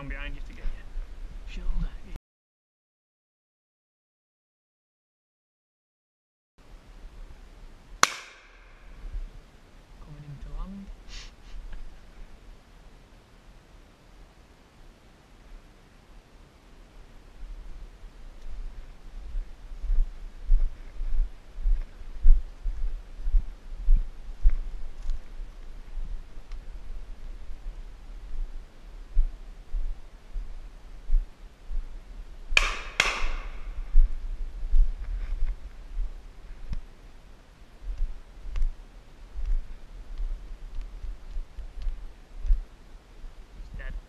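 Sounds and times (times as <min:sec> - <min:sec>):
sharp cracks: 0:08.0 - 0:09.0, 0:32.6 - 0:33.9
deep thuds of footsteps: 0:18.4 - 0:27.6, 0:32.5 - 0:36.9, 0:37.8 - 0:42.7.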